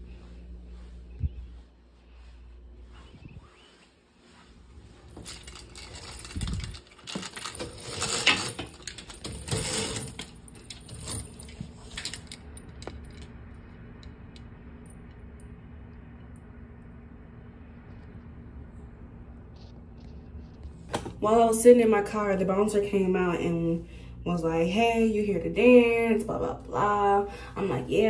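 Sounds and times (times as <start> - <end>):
roller shade rattling clicks: 5.1 - 15.2.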